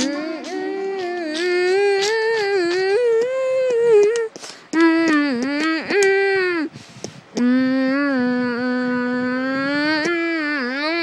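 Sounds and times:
person singing held notes: 0:00.0 - 0:11.0.

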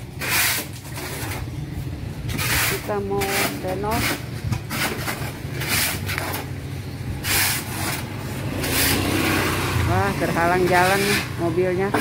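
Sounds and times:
hoe scraping through mortar: 0:00.0 - 0:01.6, 0:02.2 - 0:12.0.

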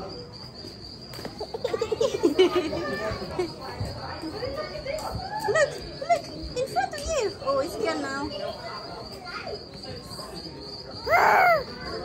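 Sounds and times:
faint voices: 0:00.0 - 0:12.0
insects trilling: 0:00.0 - 0:12.0.

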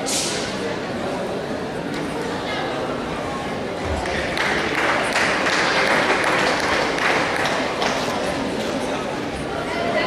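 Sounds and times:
crowd murmur: 0:00.0 - 0:10.0
crowd clapping: 0:03.9 - 0:08.4.

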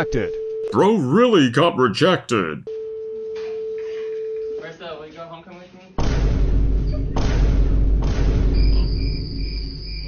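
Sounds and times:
voices: 0:00.7 - 0:02.6.

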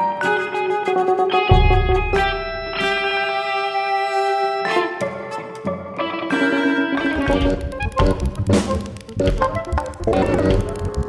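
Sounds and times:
electric guitar: 0:00.0 - 0:11.0
electronic wind instruments: 0:00.0 - 0:11.0
keyboard: 0:00.0 - 0:11.0
deep low note: 0:01.5 - 0:03.1
percussion: 0:01.5 - 0:03.7, 0:07.2 - 0:11.0.

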